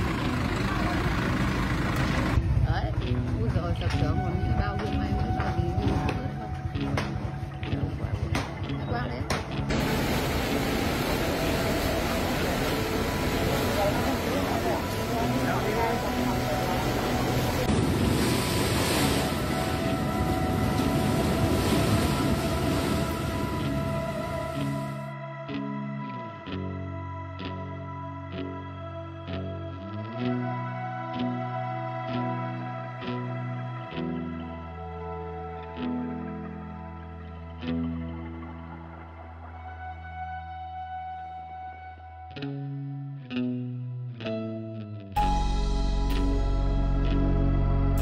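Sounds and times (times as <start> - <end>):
soft background music: 2.3 - 43.6, 44.2 - 48.0
strong wind and heavy rain: 9.7 - 24.6.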